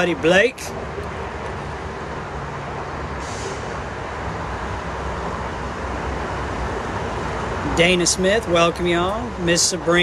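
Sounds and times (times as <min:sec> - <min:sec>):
heavy vehicle engine rumbling: 0:00.0 - 0:10.0
short hiss: 0:03.2 - 0:03.8.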